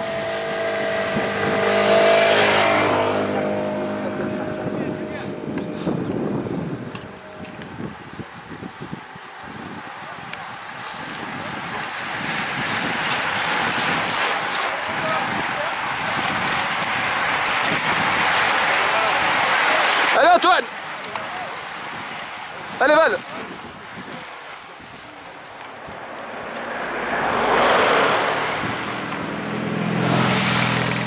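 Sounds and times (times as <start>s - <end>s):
racing bicycles passing: 0.0s - 31.0s.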